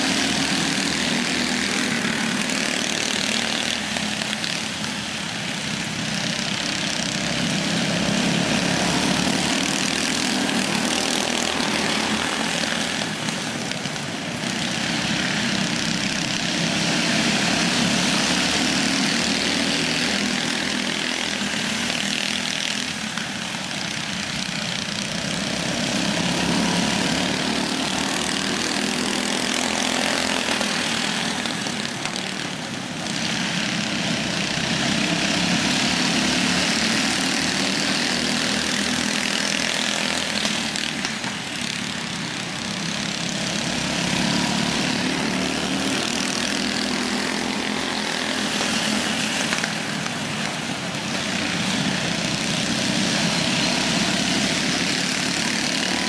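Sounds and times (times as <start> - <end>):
go-kart engines racing: 0.0 - 56.0.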